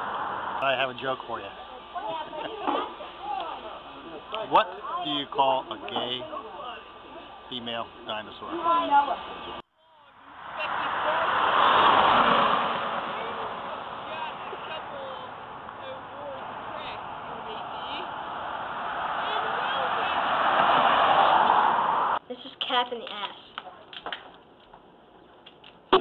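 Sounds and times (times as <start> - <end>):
vehicles passing on road: 0.0 - 22.2.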